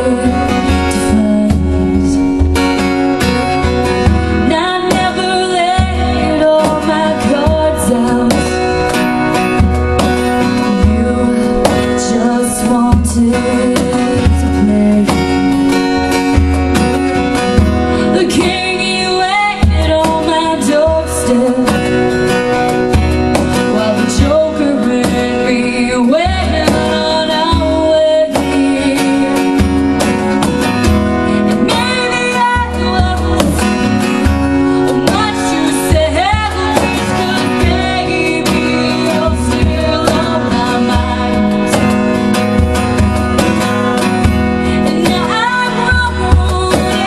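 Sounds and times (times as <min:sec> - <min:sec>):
strummed acoustic guitar: 0:00.0 - 0:47.0
woman singing into a microphone: 0:00.0 - 0:47.0.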